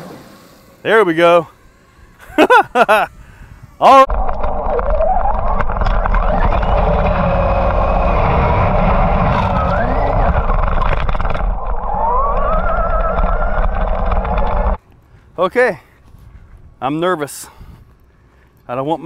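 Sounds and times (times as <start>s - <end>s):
electric motor whining: 1.5s - 14.8s
wind noise: 2.1s - 15.4s, 16.0s - 16.8s, 17.5s - 18.2s
tyre rumble: 4.1s - 14.8s.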